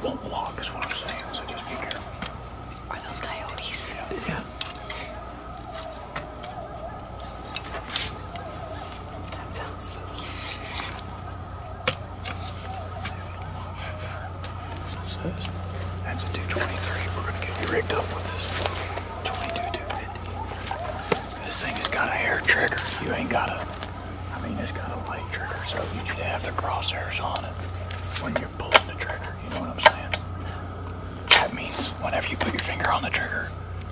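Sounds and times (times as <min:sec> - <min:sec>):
coyotes yipping and howling: 0:00.0 - 0:33.9
steady low hum: 0:00.0 - 0:33.9.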